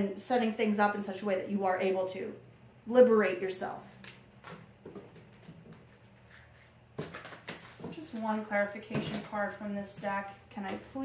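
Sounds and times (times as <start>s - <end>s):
low room hum: 0.0s - 11.0s
cards tapping and rustling: 4.0s - 11.0s.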